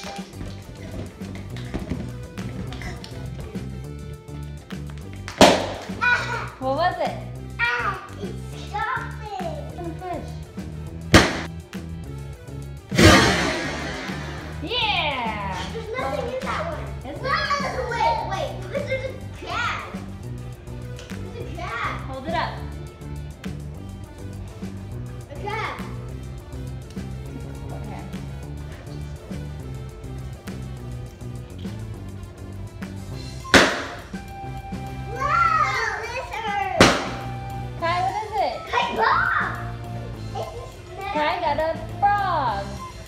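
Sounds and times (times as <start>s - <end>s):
background music with bass line: 0.0s - 43.0s
balloons bursting: 5.4s - 5.9s, 11.1s - 11.5s, 12.9s - 14.8s, 33.4s - 34.3s, 36.8s - 37.4s
children's voices and squeals: 35.1s - 36.7s, 38.6s - 41.1s.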